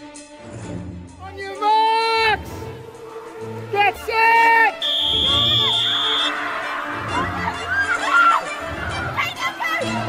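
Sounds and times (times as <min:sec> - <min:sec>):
music: 0:00.0 - 0:10.0
air horn blasts: 0:04.7 - 0:06.4
shrill high tone: 0:04.8 - 0:06.4.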